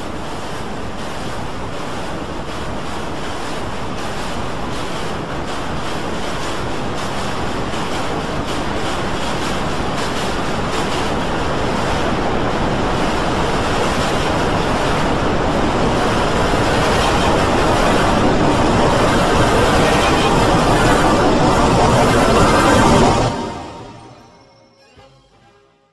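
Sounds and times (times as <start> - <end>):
roaring wash of layered soundtrack: 0.0 - 25.7.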